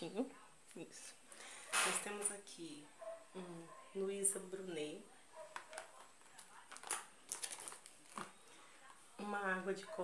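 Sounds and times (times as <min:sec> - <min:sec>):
cardboard packaging rustling: 0:05.6 - 0:08.4.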